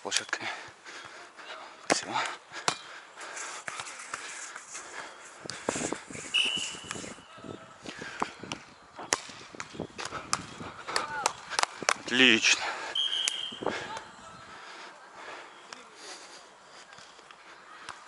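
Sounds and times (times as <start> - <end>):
players' voices: 0.0 - 18.0
volleyballs being hit: 2.6 - 2.9, 8.2 - 12.1, 13.0 - 14.0.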